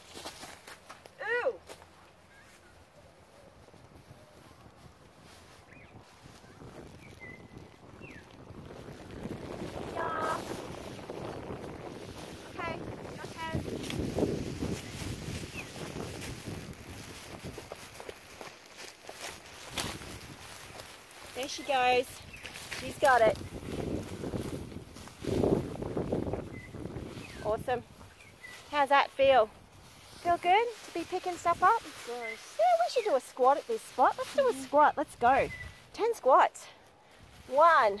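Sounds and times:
footsteps through dry grass: 0.0 - 38.0.

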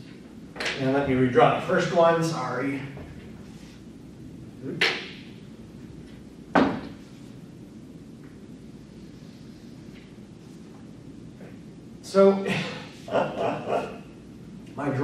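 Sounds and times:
room noise: 0.0 - 15.0.

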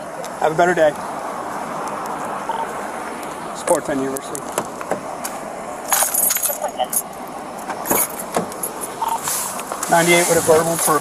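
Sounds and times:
short beep: 9.0 - 9.3.

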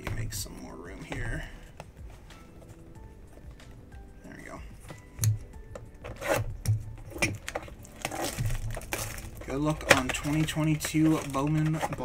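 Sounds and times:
cardboard box tearing and crinkling: 7.4 - 12.0.

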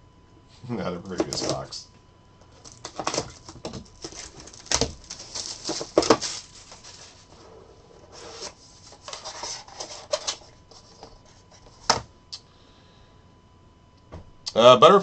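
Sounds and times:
plastic wrap crinkling: 2.6 - 7.3
cardboard scraping: 2.7 - 12.0.

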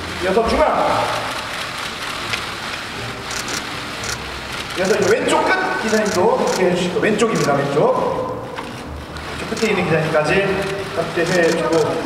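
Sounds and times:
crowded hall hum: 0.0 - 12.0
camera shutters clicking: 1.3 - 7.7, 10.5 - 12.0.

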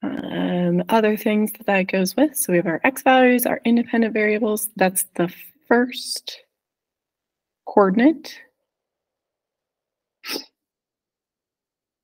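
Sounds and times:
sharp burst of breath: 10.2 - 10.5.

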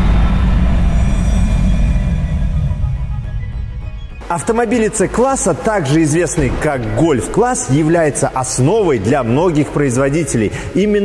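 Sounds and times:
deep bass rumble: 0.0 - 5.2
cinematic hit: 0.0 - 9.8.

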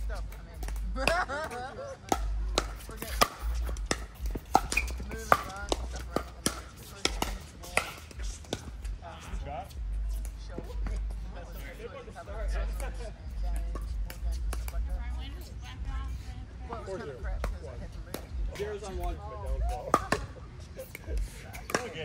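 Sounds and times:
players' voices: 0.0 - 22.0
person laughing: 0.8 - 2.1.

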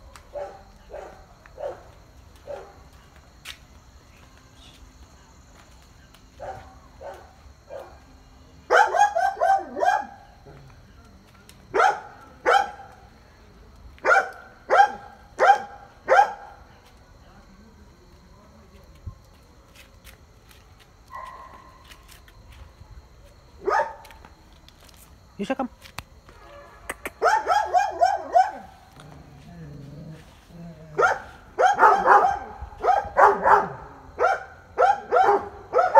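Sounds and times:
dog barking: 0.3 - 2.8, 6.4 - 8.0, 8.7 - 10.3, 11.7 - 12.9, 14.0 - 16.6, 21.1 - 21.8, 23.6 - 24.0, 27.0 - 28.8, 30.9 - 35.9.

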